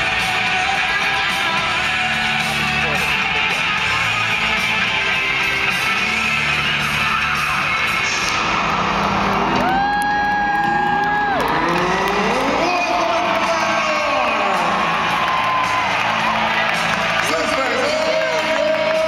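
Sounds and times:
crowd cheering: 0:00.0 - 0:19.0
loud music over loudspeakers: 0:00.0 - 0:19.0.

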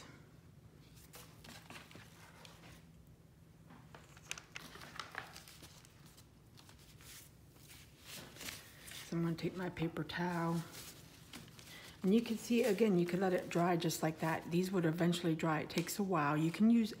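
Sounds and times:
paper rustling and crinkling: 0:00.9 - 0:02.9, 0:03.7 - 0:13.8.

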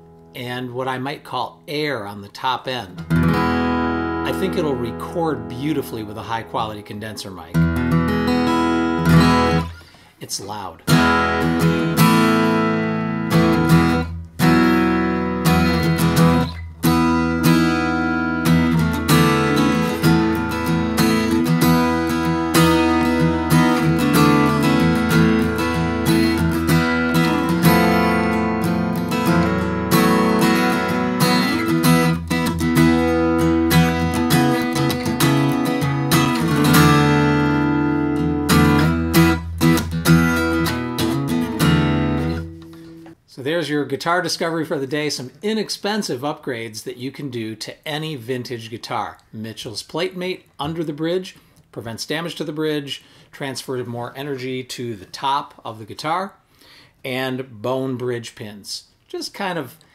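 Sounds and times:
acoustic guitar strummed chords: 0:03.0 - 0:10.0, 0:10.9 - 0:43.2.

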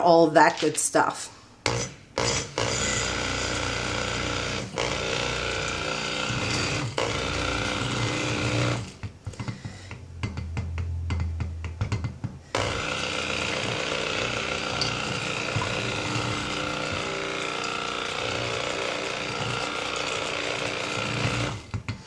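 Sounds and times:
stick blender in glass bowl: 0:01.7 - 0:09.0, 0:12.6 - 0:21.8.

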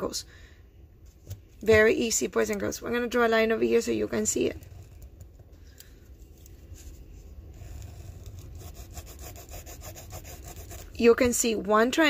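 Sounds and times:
pencil scratching on paper: 0:07.6 - 0:11.1.

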